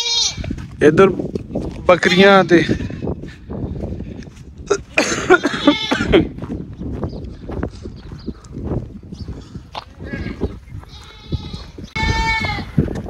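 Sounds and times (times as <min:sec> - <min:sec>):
goats bleating: 0:00.0 - 0:00.6, 0:05.0 - 0:06.4, 0:09.8 - 0:12.8.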